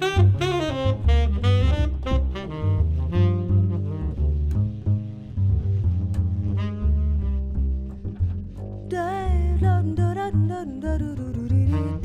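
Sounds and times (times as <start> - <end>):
tenor saxophone run: 0.0 - 8.0, 11.7 - 12.0
upright double bass: 0.0 - 12.0.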